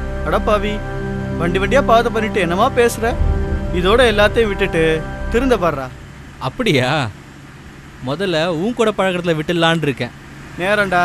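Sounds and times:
car engine and road hum: 0.0 - 11.0
man talking: 1.4 - 7.1.

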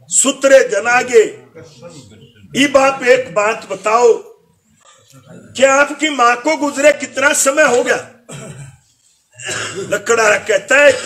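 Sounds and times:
man clearing his throat: 8.3 - 10.2, 10.8 - 11.0.

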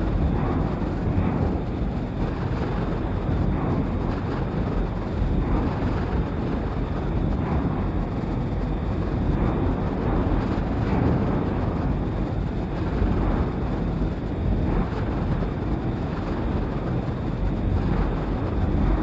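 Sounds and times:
dark ambient rumbling drone: 0.0 - 19.0.

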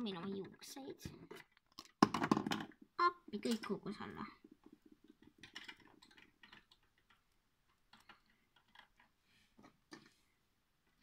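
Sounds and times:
plastic toys clicking and tapping: 0.0 - 10.2.

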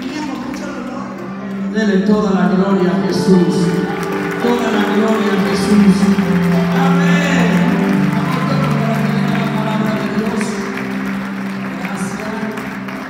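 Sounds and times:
crowd noise: 0.0 - 13.0
worship music over loudspeakers: 0.0 - 13.0.

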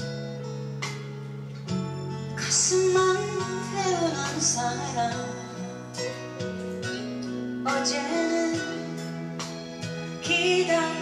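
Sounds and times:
instrumental band playing slow song: 0.0 - 11.0.

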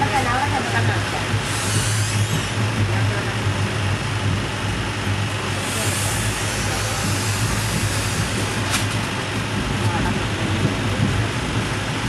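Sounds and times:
train rumble inside carriage: 0.0 - 12.0.

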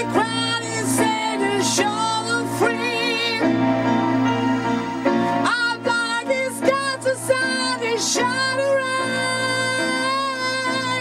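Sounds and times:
operatic singing voice: 0.0 - 3.6, 5.4 - 11.0
electronic keyboard chords: 0.0 - 11.0.

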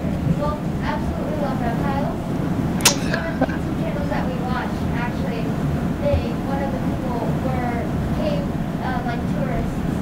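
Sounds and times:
sharp click: 2.8 - 3.1.

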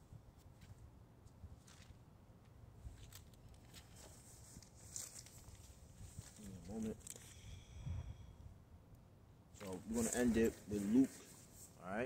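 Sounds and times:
faint low outdoor rumble: 0.0 - 12.0.

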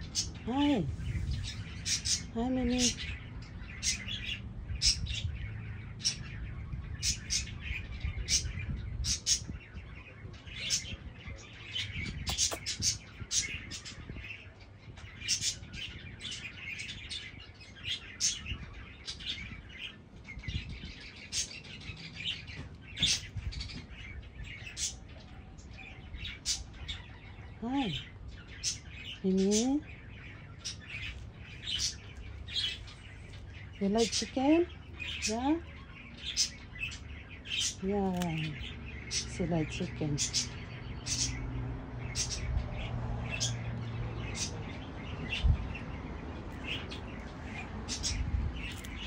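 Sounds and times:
small birds chirping: 0.0 - 49.0.

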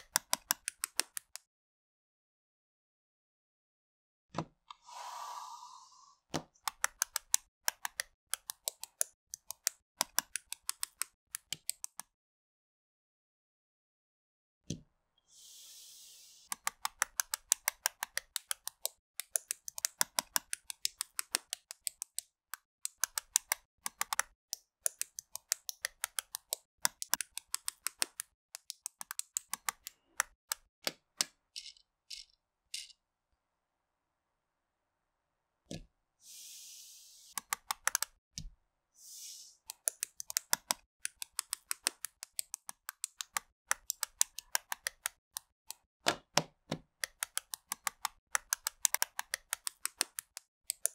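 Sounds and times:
plastic bricks clicking together: 31.2 - 33.0.

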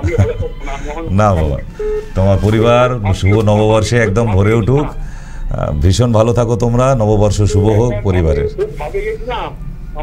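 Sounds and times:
man speaking: 0.6 - 9.6
telephone line beep: 0.8 - 5.0, 7.2 - 8.8.

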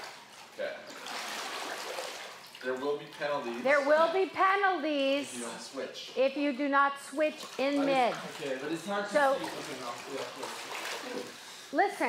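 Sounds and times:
water splashing from swimmer: 0.0 - 4.3, 7.2 - 11.6.

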